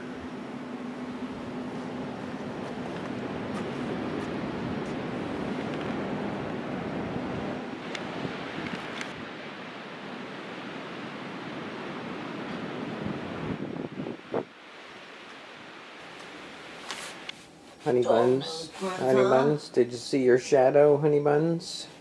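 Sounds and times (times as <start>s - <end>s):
ocean surf: 0.0s - 13.6s
wind: 0.0s - 22.0s.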